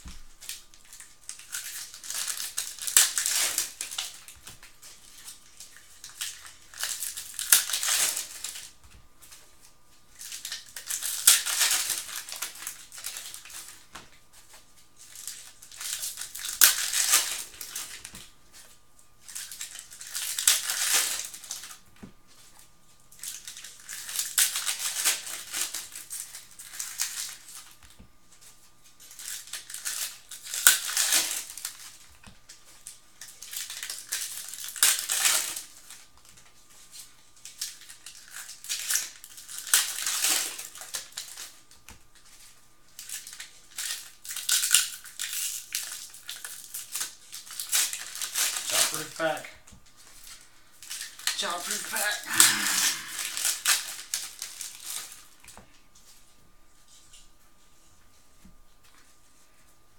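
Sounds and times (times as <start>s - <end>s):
foil wrappers crinkling: 0.0s - 59.7s.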